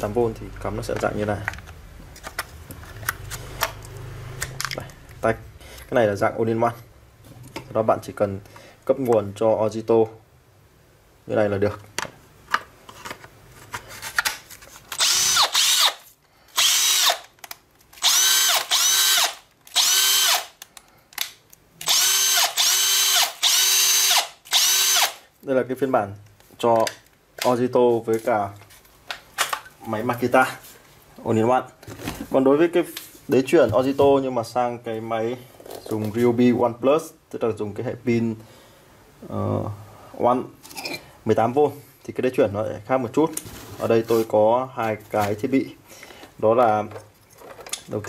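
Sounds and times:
cordless drill whining: 0:15.0 - 0:16.0, 0:16.6 - 0:17.3, 0:18.0 - 0:20.5, 0:21.8 - 0:25.2.

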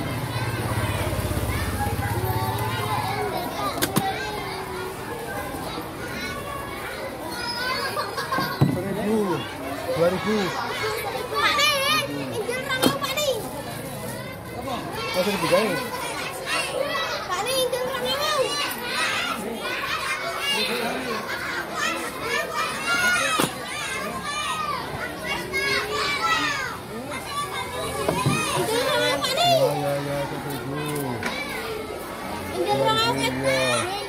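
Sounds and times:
children chattering and calling out: 0:00.0 - 0:34.0.

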